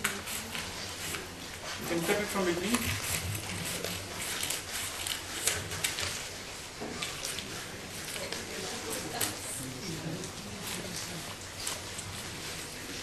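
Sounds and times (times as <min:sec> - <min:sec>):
scissors snipping paper: 0:00.0 - 0:06.3, 0:07.0 - 0:09.4
paper rustling: 0:00.0 - 0:09.4, 0:10.2 - 0:13.0.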